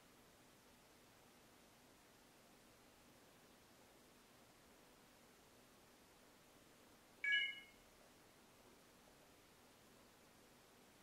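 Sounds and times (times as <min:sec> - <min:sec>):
phone charging chime: 0:07.2 - 0:07.8.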